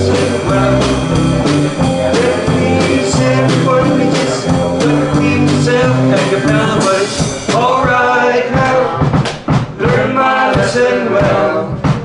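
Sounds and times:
man singing: 0.0 - 9.2
rock band playing: 0.0 - 12.0
sharp drum hits: 0.0 - 12.0.

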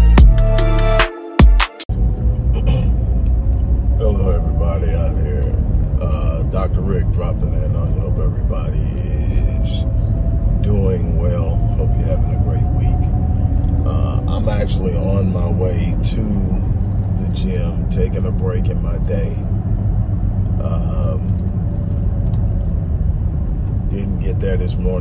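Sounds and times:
car road and engine rumble: 1.9 - 25.0
man talking: 2.6 - 3.1, 4.0 - 9.8, 10.6 - 13.1, 13.8 - 19.4, 20.6 - 21.3, 23.9 - 25.0.

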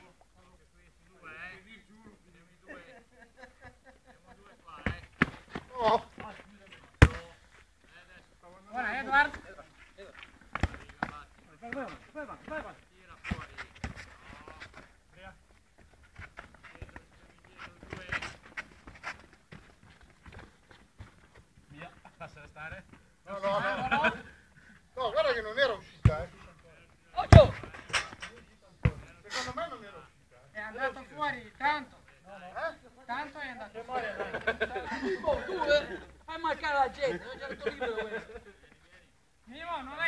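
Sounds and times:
ball being kicked: 6.9 - 7.4, 10.5 - 11.2, 27.2 - 29.1.

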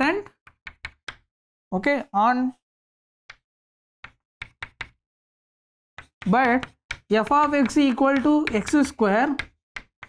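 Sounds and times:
chalk tapping on chalkboard: 4.0 - 5.0, 6.0 - 10.0.

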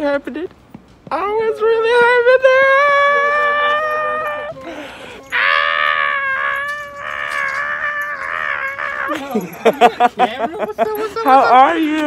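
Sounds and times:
person shrieking excitedly: 2.7 - 9.5.

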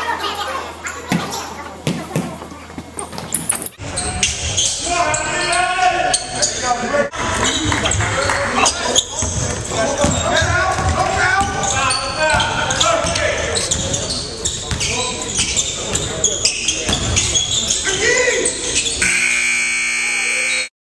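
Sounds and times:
players' voices echoing: 0.0 - 19.2
basketball bouncing: 1.1 - 3.8, 9.2 - 14.0, 16.9 - 17.3
sneaker squeaks: 1.1 - 6.6, 7.4 - 19.1
steady multi-pitch tone: 19.0 - 20.7.

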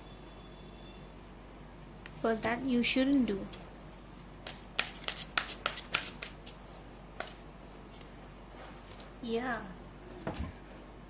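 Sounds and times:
cards being shuffled: 4.4 - 6.6.

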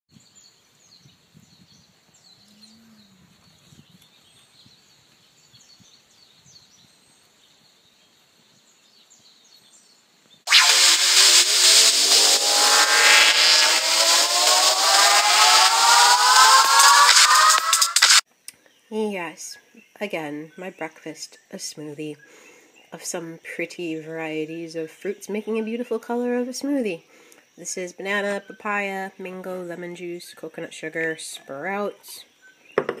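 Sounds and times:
loud whirring with rising whine: 10.5 - 18.2.

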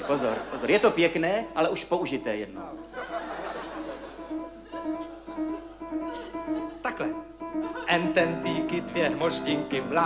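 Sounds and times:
grand piano played quietly: 0.9 - 10.0.

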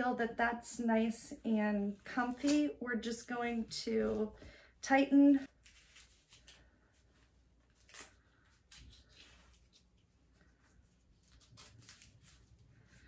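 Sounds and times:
fabric straps rustling: 5.3 - 13.0.

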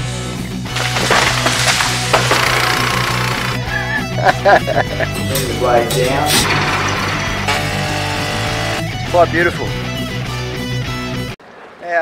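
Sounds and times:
voice: 5.1 - 6.7.

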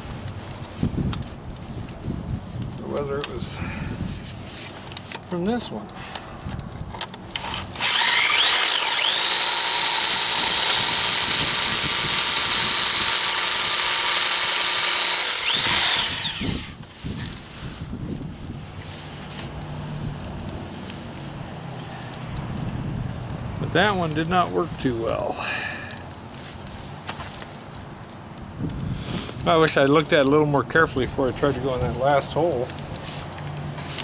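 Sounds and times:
hammer drill boring into rock: 7.4 - 16.8.

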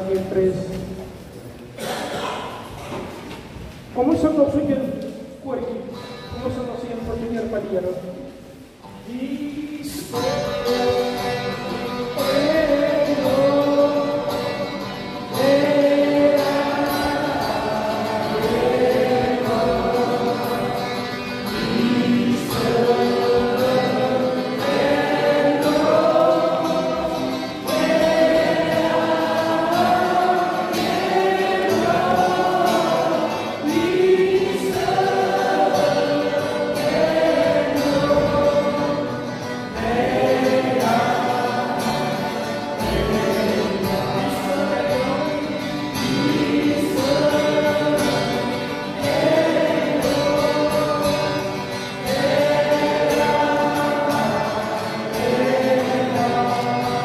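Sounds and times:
acoustic guitar: 0.0 - 57.0
congregation singing a hymn: 0.0 - 57.0.

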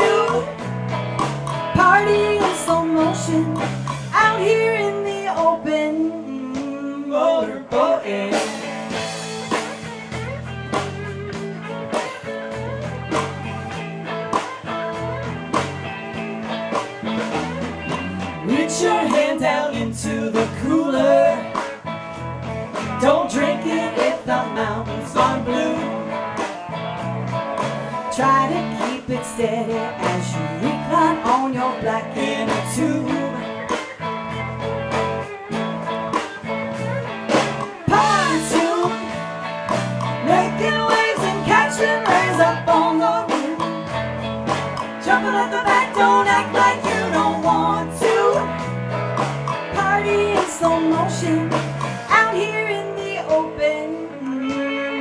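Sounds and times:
drum kit steady beat: 0.0 - 5.8, 7.7 - 52.8
bass guitar: 0.0 - 55.0
electric guitars: 0.0 - 55.0.

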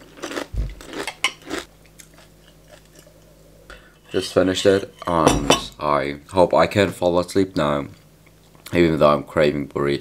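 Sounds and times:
chewing crunchy cereal: 0.0 - 3.3.

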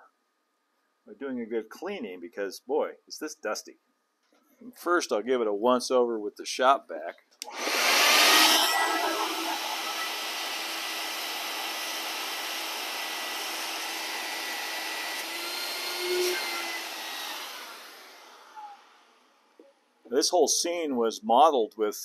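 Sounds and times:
vacuum motor winding down: 7.4 - 19.3
shop vac running: 7.4 - 19.4.

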